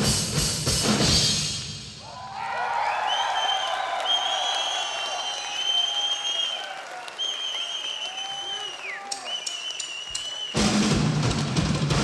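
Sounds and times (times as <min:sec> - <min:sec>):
audience applauding and cheering: 0:02.0 - 0:12.0
long high whistles: 0:02.9 - 0:10.6.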